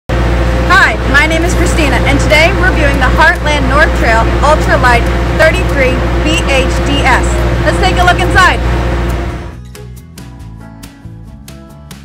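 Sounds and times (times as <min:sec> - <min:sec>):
low mechanical hum: 0:00.1 - 0:09.6
woman speaking: 0:00.7 - 0:08.6.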